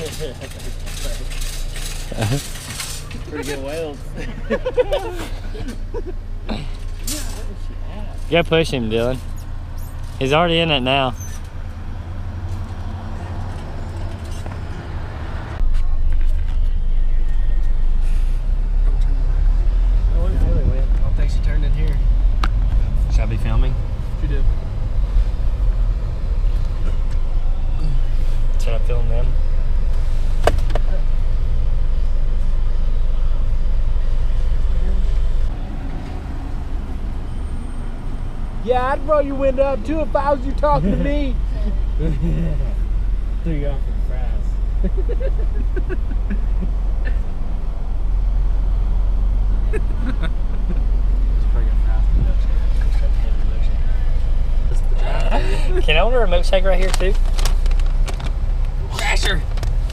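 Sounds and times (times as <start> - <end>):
car road and engine rumble: 0.0 - 59.9.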